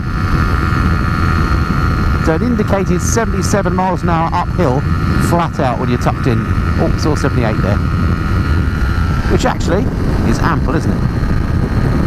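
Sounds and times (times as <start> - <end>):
motorcycle engine at high revs: 0.0 - 12.0
wind noise on microphone: 0.0 - 12.0.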